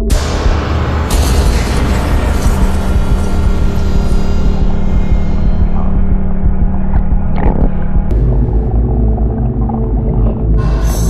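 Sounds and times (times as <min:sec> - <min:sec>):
droning background music: 0:00.0 - 0:11.0.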